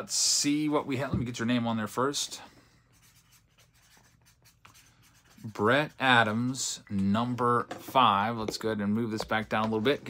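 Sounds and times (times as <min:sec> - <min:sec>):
marker writing on paper: 0:02.9 - 0:06.0.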